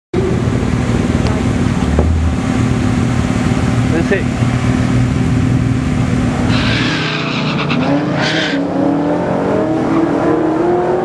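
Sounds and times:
car engine idling: 0.2 - 8.6.

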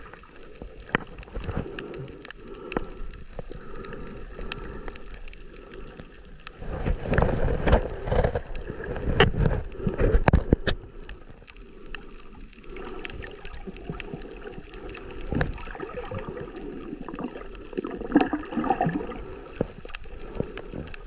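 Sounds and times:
muffled underwater wash: 0.0 - 21.0
water splashing and sloshing: 0.0 - 21.0.

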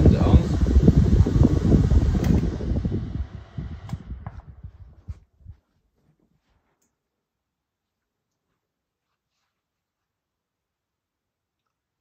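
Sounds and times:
desk fans buffeting microphone: 0.0 - 5.8.

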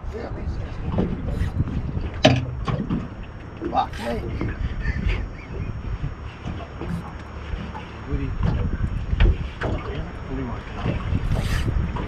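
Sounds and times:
wind buffeting microphone: 0.0 - 12.0
sharp knocks: 2.2 - 3.1.

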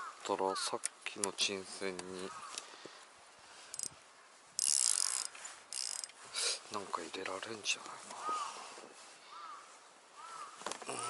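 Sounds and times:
fishing reel whirring: 3.7 - 3.9, 4.6 - 6.2.

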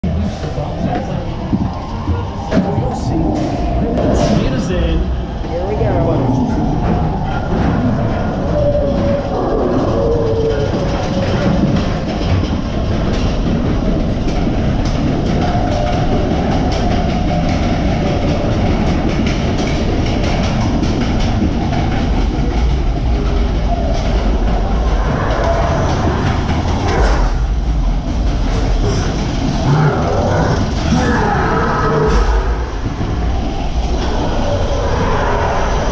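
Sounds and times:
steady rumble: 0.0 - 35.9.

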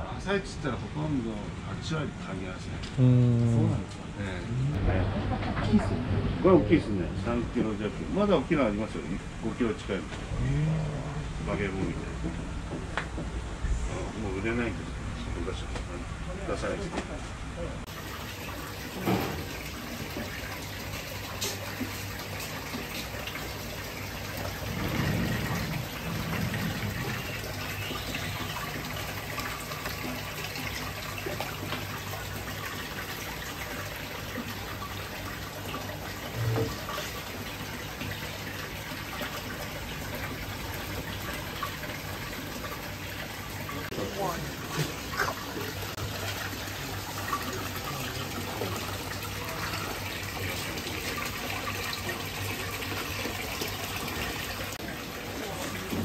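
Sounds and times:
water pouring into a tank: 17.9 - 56.0.

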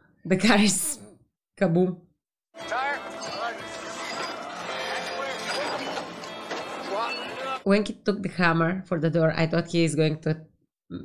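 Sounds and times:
film score music: 2.6 - 7.6.

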